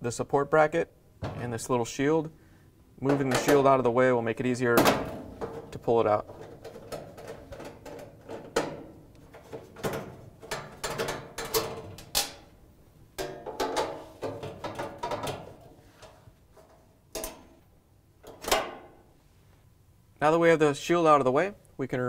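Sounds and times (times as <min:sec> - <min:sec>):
sheet metal rattling and scraping: 0:04.9 - 0:12.4.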